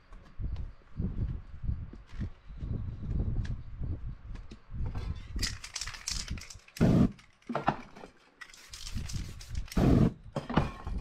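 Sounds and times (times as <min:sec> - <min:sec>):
fire igniting whoosh: 0:06.8 - 0:07.2, 0:08.9 - 0:10.2
spray can hissing: 0:08.5 - 0:10.1.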